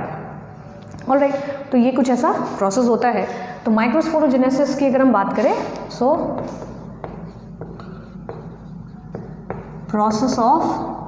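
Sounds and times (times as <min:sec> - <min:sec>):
marker pen writing on whiteboard: 0:05.6 - 0:10.8.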